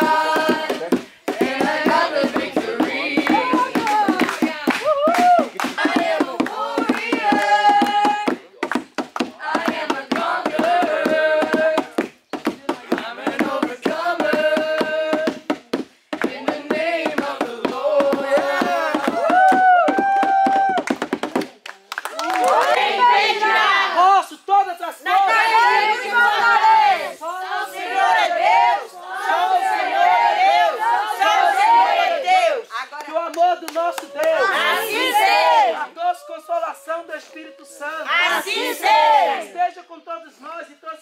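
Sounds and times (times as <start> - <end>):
group singing: 0.0 - 8.4, 9.1 - 19.5, 22.4 - 24.2, 25.0 - 32.7, 34.0 - 39.6
hands clapping in rhythm: 0.0 - 23.6, 29.2 - 35.8.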